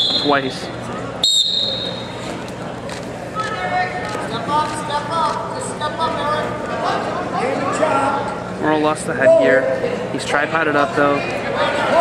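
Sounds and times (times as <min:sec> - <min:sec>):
crowd noise in a hall: 0:00.0 - 0:12.0.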